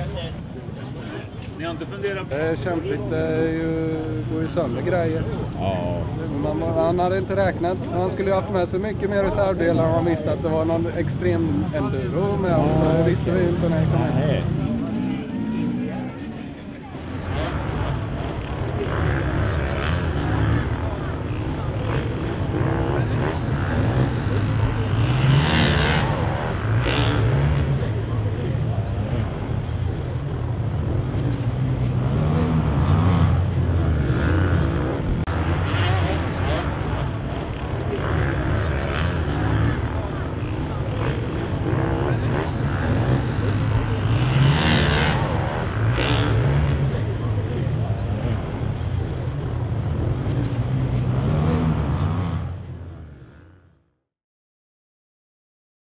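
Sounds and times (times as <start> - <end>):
dirt bike engines revving: 0.0 - 53.6.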